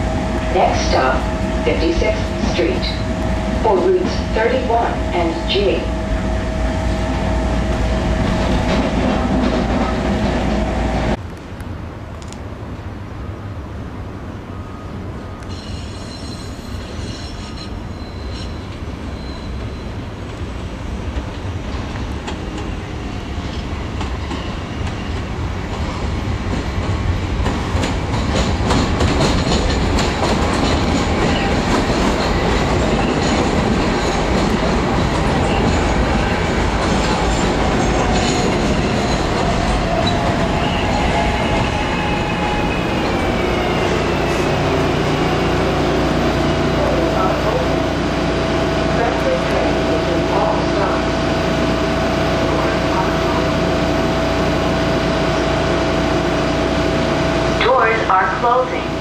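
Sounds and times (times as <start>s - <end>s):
train pulling into platform: 0.0s - 59.0s
train wheel clatter: 26.5s - 43.8s.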